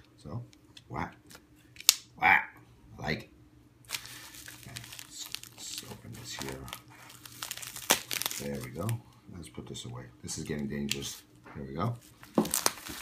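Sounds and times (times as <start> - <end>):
bubble wrap crinkling and tearing: 3.9 - 9.0, 12.0 - 13.0.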